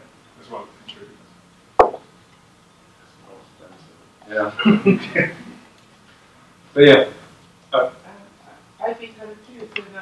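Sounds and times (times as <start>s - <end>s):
short sharp pop: 1.8s - 2.0s.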